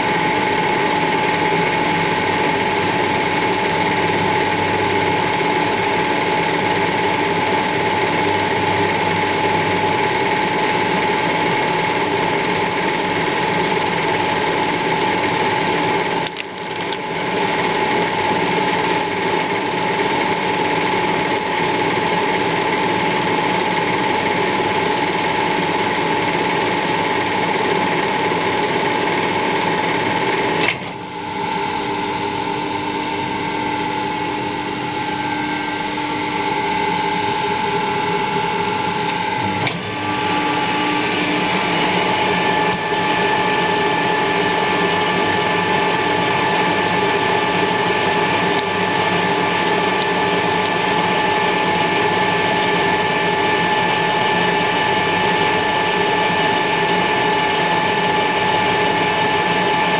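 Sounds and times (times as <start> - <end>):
lathe mechanical whine: 0.0 - 59.9.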